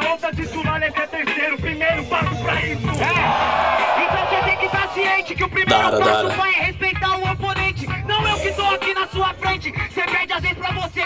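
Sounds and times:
person rapping: 0:00.0 - 0:03.3, 0:04.0 - 0:11.0
hip hop beat: 0:00.0 - 0:11.0
crowd shouting: 0:03.0 - 0:06.6.

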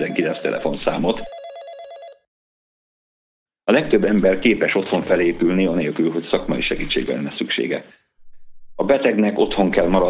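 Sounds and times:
electronic telephone ring: 0:00.0 - 0:02.3.

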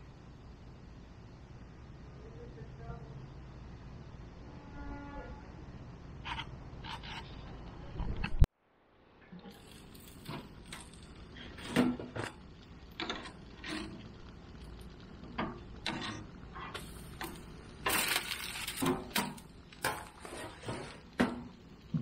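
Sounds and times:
rustling noise: 0:16.5 - 0:21.2.

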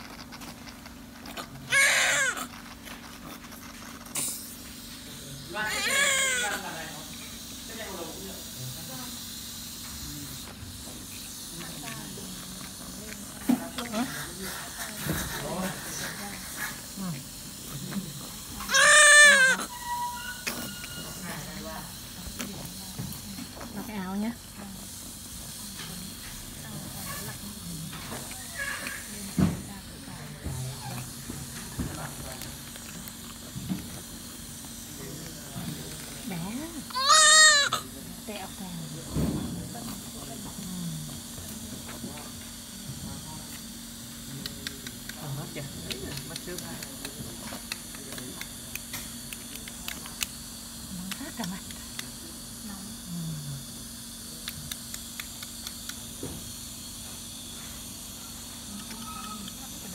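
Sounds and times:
newborn baby crying: 0:05.7 - 0:06.6, 0:18.7 - 0:19.7, 0:36.9 - 0:37.8.

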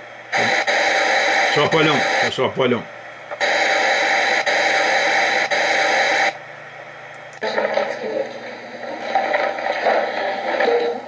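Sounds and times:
static hiss: 0:00.0 - 0:11.0.

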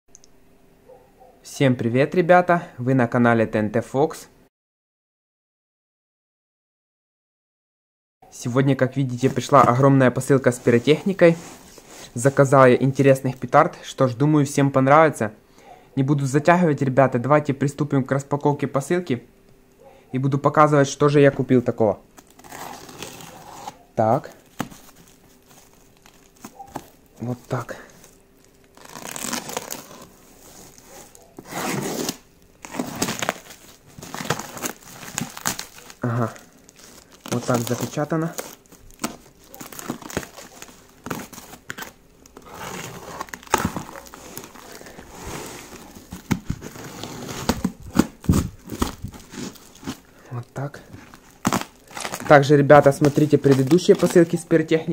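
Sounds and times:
plastic film crinkling: 0:09.1 - 0:13.5, 0:22.2 - 0:54.9.

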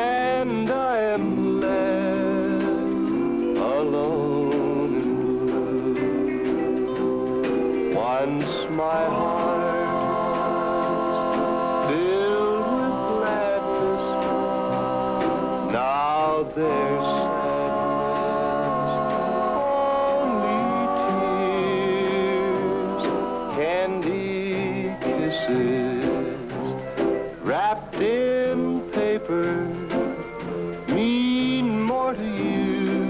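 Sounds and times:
man singing country song: 0:00.0 - 0:07.0, 0:07.9 - 0:26.8, 0:27.4 - 0:30.2, 0:30.9 - 0:33.0
band playing: 0:00.0 - 0:33.0.

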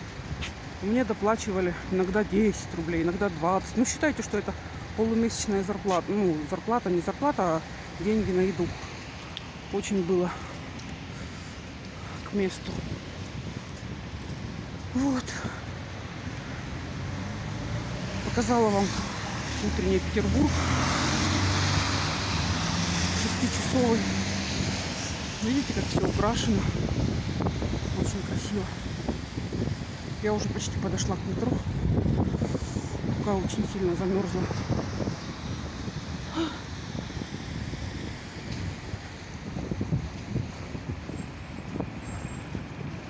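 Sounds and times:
cars passing on road: 0:00.0 - 0:43.0
tyre hiss on wet road: 0:10.3 - 0:14.7, 0:20.5 - 0:23.2, 0:32.1 - 0:33.2, 0:34.5 - 0:40.8.

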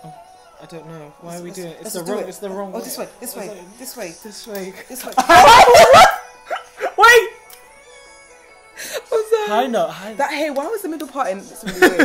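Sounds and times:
faint music: 0:00.0 - 0:12.0
person yelping: 0:05.2 - 0:07.4.

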